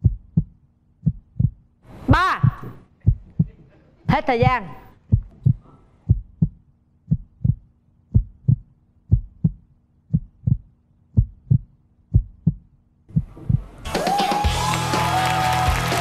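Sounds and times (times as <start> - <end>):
heartbeat thumps: 0.0 - 3.6, 4.4 - 13.8.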